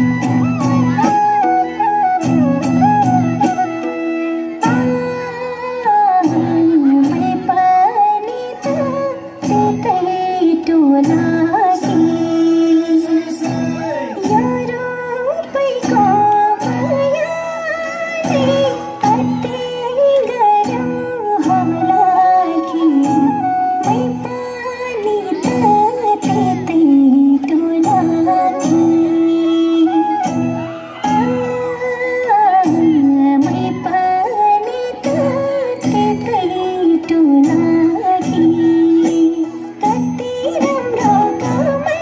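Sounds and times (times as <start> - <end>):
folk instrumental accompaniment: 0.0 - 42.0
woman singing: 4.5 - 42.0.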